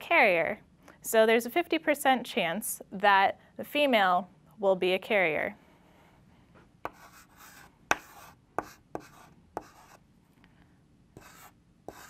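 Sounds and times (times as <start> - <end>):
chalk tapping on blackboard: 6.8 - 10.0, 11.2 - 12.0
chalk scratching on blackboard: 6.9 - 10.0, 11.2 - 12.0.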